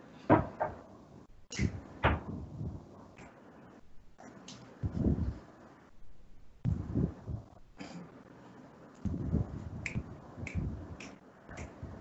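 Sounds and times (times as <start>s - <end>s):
dull low thumps: 1.5s - 2.9s, 4.8s - 5.4s, 6.6s - 7.6s, 9.1s - 11.0s.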